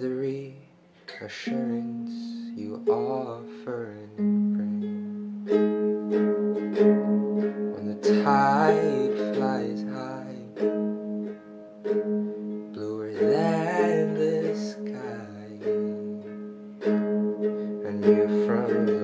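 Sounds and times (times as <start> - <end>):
man singing: 0.0 - 5.2, 7.7 - 10.7, 12.7 - 16.5, 17.8 - 19.0
strummed acoustic string instrument: 0.0 - 19.0.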